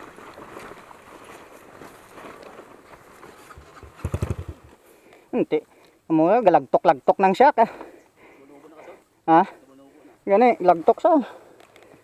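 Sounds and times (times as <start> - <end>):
rough background hiss: 2.7 - 12.0
dirt bike engine at low revs: 3.3 - 4.8.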